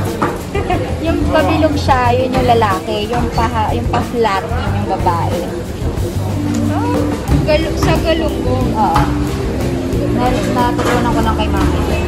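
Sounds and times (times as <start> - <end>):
background music: 0.0 - 12.0
voices: 0.0 - 12.0.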